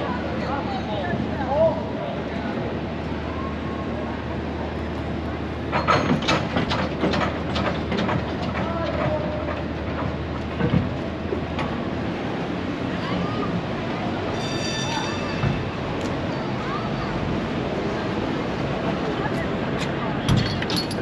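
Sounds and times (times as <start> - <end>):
wheels clattering knocks: 5.6 - 11.9.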